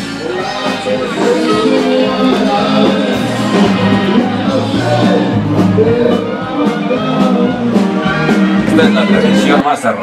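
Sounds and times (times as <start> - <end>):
music with steady beat: 0.0 - 9.7.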